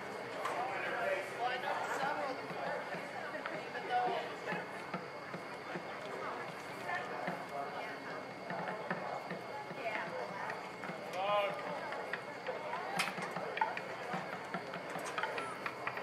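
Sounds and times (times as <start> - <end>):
indistinct chatter of voices: 0.0 - 16.0.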